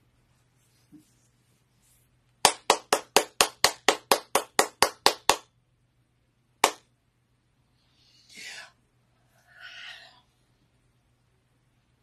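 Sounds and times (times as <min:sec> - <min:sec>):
person clapping hands: 0:02.4 - 0:05.5, 0:06.6 - 0:06.8.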